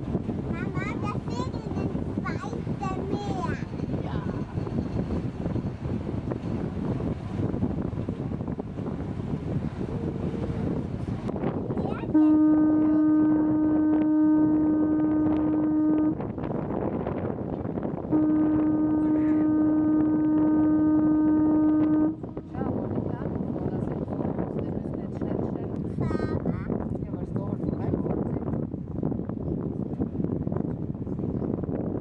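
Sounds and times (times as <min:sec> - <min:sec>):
wind noise: 0:00.0 - 0:32.0
voices: 0:00.5 - 0:04.7, 0:10.0 - 0:16.1
ship horn blasts: 0:03.7 - 0:16.9, 0:17.8 - 0:23.1.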